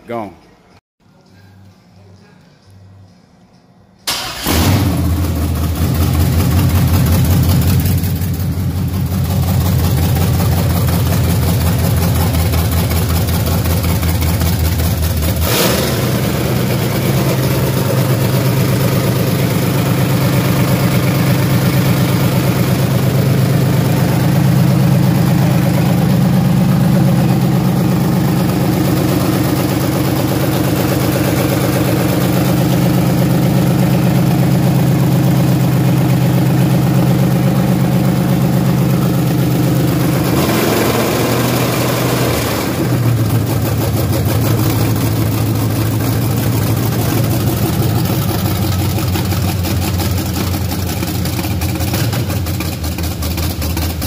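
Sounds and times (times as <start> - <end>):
car engine running loud: 4.4 - 54.0.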